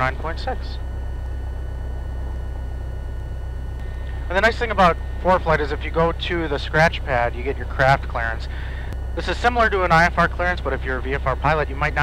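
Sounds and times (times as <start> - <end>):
aircraft piston engine idling: 0.0 - 12.0.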